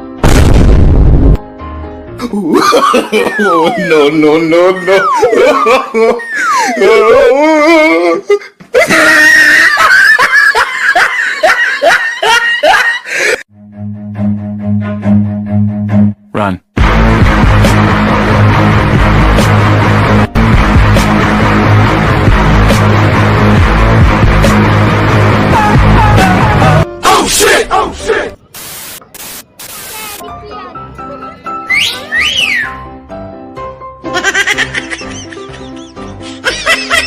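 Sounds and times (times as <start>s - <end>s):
woman laughing loudly: 2.4s - 4.0s, 4.6s - 7.6s, 8.7s - 13.4s, 34.1s - 37.0s
static-like hiss: 28.5s - 30.2s.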